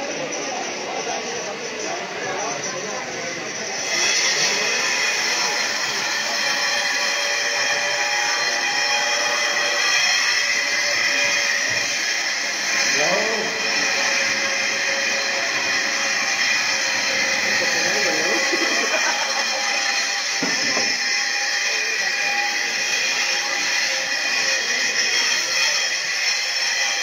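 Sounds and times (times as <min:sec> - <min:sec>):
crowd voices: 0:00.0 - 0:27.0.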